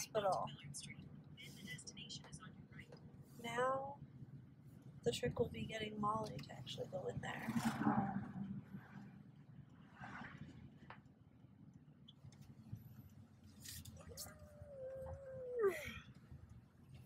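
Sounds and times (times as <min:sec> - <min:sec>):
car driving rumble: 0:00.0 - 0:17.0.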